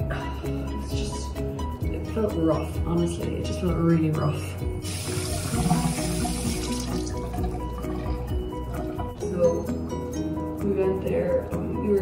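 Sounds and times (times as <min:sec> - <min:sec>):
background music: 0:00.0 - 0:12.0
tap running into sink: 0:05.1 - 0:07.6.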